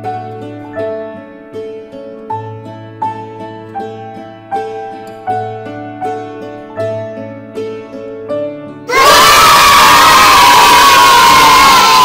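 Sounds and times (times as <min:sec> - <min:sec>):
soft plucked-string music: 0:00.0 - 0:08.6
children cheering and shouting: 0:08.9 - 0:12.0.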